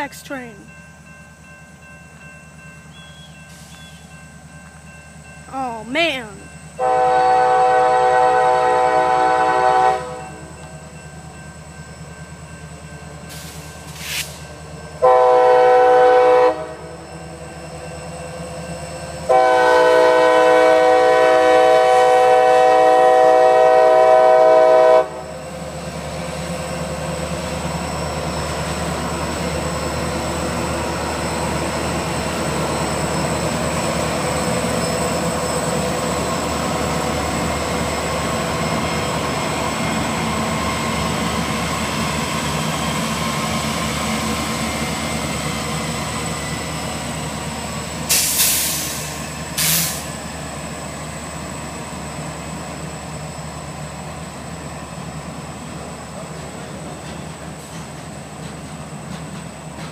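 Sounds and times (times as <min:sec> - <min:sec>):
freight train rumbling past: 0:00.0 - 0:59.9
short hisses: 0:13.4 - 0:14.4.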